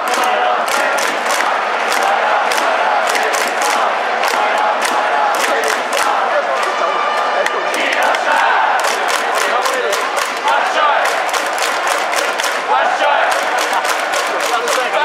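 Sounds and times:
rhythmic clapping: 0.0 - 15.0
stadium crowd chanting: 0.0 - 15.0.

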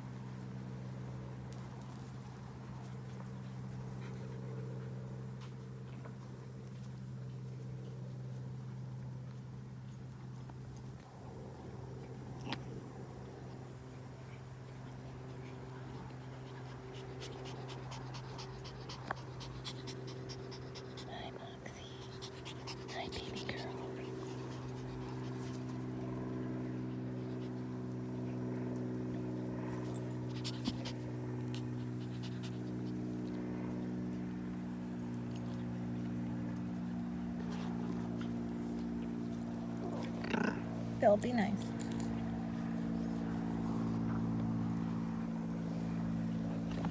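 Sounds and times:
steady mechanical hum: 0.0 - 46.9
dogs panting: 1.6 - 10.9, 13.4 - 46.9
small clicks and jingles: 34.8 - 36.9.

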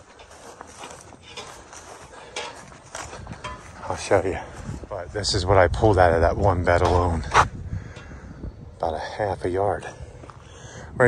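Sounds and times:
light knocks and rustles: 0.0 - 4.9
footsteps on grass: 0.0 - 6.2.

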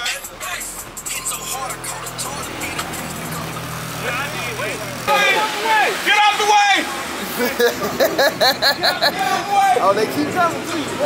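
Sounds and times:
music from car stereo: 0.0 - 5.2
car engine idling: 0.0 - 11.0
people talking: 0.0 - 11.0.

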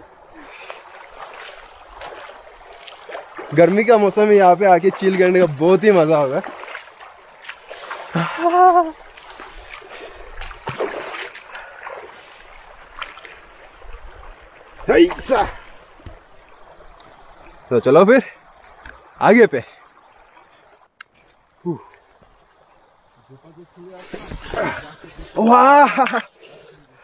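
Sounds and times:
feet splashing in water: 0.0 - 17.7
stream trickling over stones: 0.0 - 27.0
man's wordless voice sounds: 3.5 - 6.5
breathy hiss: 23.9 - 25.4, 26.4 - 27.0.

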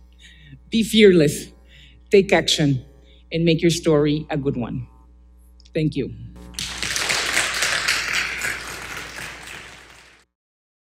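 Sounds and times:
audience applauding: 6.5 - 10.2.

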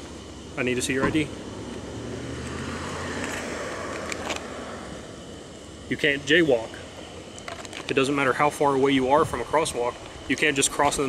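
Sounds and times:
steady low hum: 0.0 - 11.0
car passing: 0.6 - 6.9.

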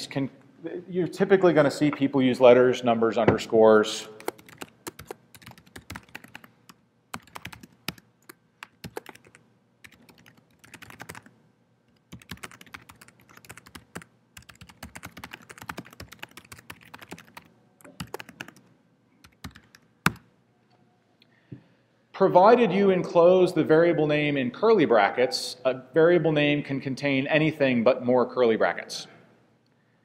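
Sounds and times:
typing on keyboard: 4.2 - 6.5, 7.1 - 11.3, 12.0 - 20.2.

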